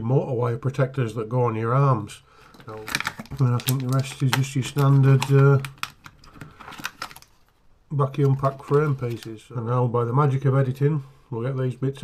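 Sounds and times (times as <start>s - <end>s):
plastic bags crinkling: 2.4s - 9.4s.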